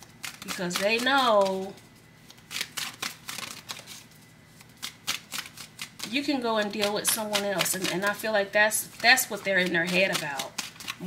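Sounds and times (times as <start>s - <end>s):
cards being shuffled: 0.1s - 8.2s, 8.8s - 11.0s.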